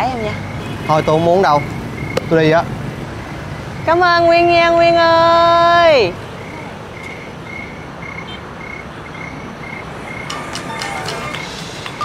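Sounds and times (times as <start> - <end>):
cricket chirping: 1.5 - 2.4, 6.4 - 12.0.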